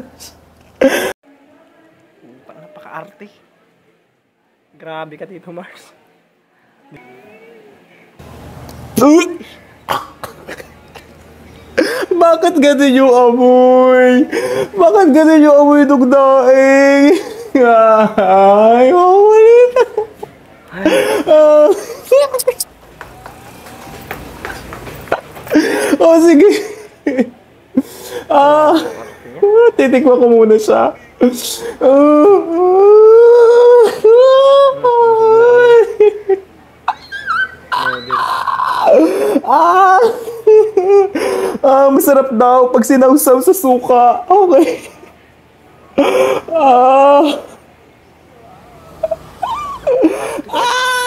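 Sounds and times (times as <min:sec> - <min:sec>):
man mock crying and wailing: 0:11.8 - 0:20.2, 0:20.8 - 0:22.7, 0:25.5 - 0:42.7, 0:46.0 - 0:47.6, 0:48.9 - 0:51.0
man laughing: 0:16.8 - 0:22.7, 0:25.1 - 0:27.4, 0:28.3 - 0:29.9, 0:31.1 - 0:41.4, 0:49.0 - 0:51.0.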